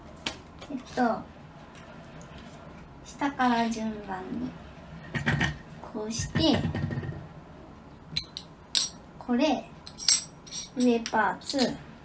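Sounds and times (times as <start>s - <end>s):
small metal parts clinking: 9.8s - 11.8s.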